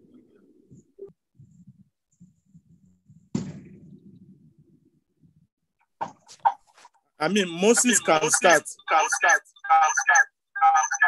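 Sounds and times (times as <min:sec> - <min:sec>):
thump: 0:03.3 - 0:03.9.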